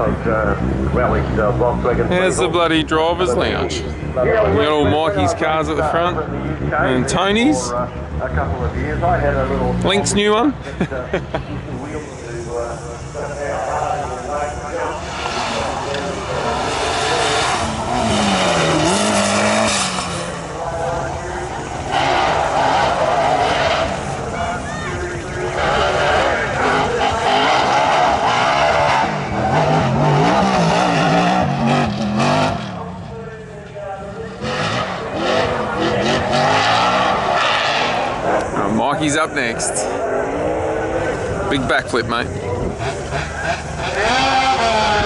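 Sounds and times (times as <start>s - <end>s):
truck engine revving hard: 11.8s - 33.1s, 34.2s - 45.0s
tyres squealing and spinning: 42.8s - 45.0s.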